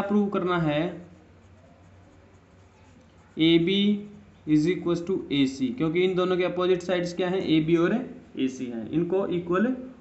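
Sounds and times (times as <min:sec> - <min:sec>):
pencil scratching on paper: 0:00.0 - 0:09.6.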